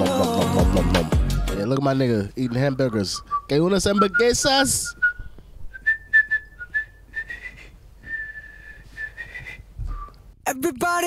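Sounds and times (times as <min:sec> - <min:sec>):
person whistling a tune: 0:03.2 - 0:10.2.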